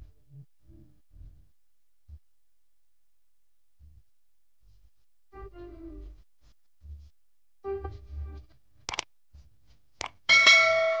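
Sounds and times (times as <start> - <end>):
mouse clicks: 8.9 - 9.1
notification bell ding: 10.3 - 11.0.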